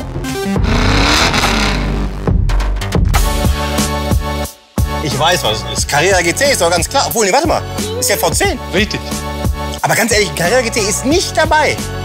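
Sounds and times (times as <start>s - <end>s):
background music: 0.0s - 12.0s
car engine revving loudly: 0.6s - 2.2s.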